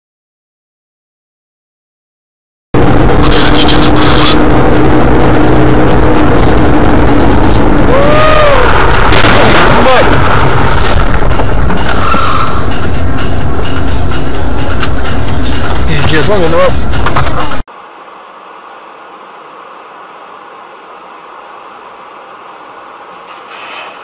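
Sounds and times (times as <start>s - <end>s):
road and engine noise: 2.8s - 24.0s
brief squeals: 23.3s - 24.0s.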